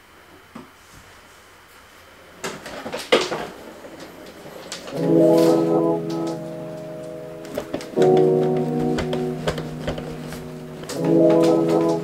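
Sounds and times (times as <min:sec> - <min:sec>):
wheelchair clattering and rattling: 0:02.4 - 0:12.0.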